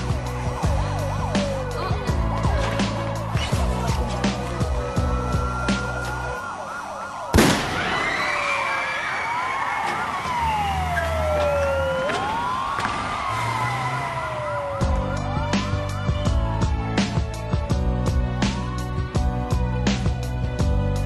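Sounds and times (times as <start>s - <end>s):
police sirens wailing: 0.0s - 21.0s.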